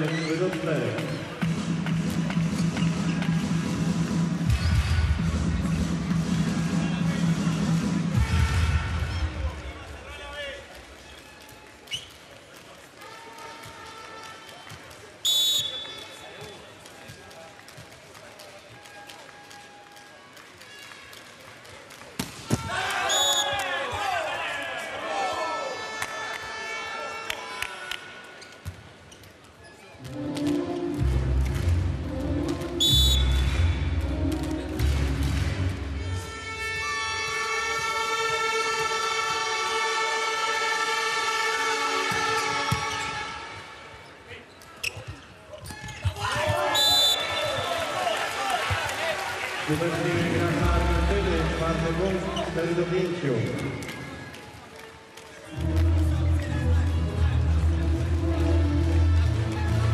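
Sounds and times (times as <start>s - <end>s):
arena music with heavy beat: 1.5s - 9.5s
referee whistle blasts: 15.2s - 16.2s, 23.0s - 23.6s, 32.8s - 33.6s, 46.6s - 47.9s
crowd cheering: 22.4s - 28.2s, 46.0s - 59.9s.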